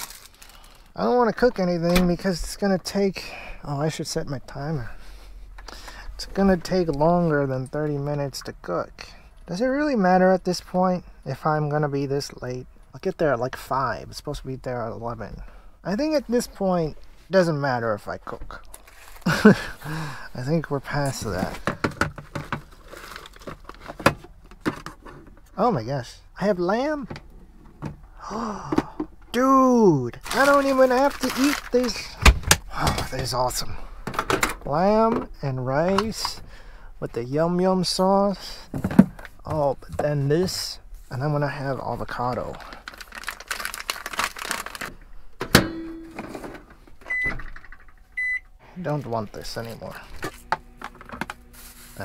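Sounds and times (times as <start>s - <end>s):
plastic pouch rustling: 0.0s - 1.0s, 18.7s - 24.0s, 30.2s - 32.2s, 42.1s - 45.0s
keypad beep: 48.2s - 48.5s.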